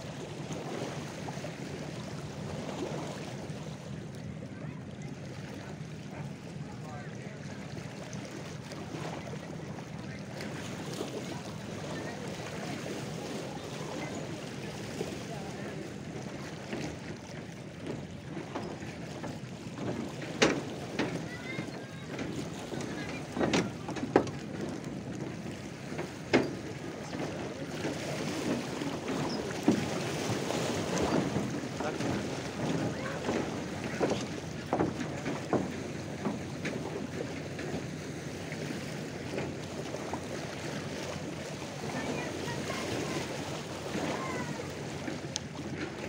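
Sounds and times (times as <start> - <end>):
lake waves lapping and splashing: 0.0 - 46.0.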